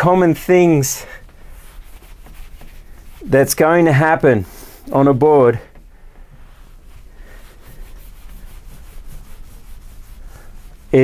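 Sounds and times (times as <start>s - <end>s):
marker scratching on whiteboard: 1.4s - 5.4s, 6.6s - 11.0s.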